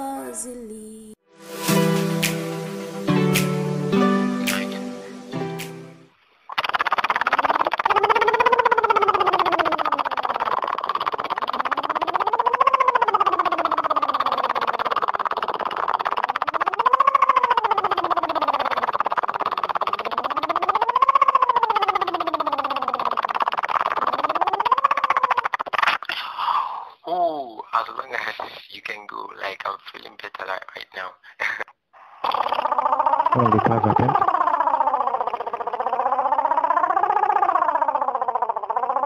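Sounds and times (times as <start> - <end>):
lip trill vocal sirens: 33.3 - 34.4.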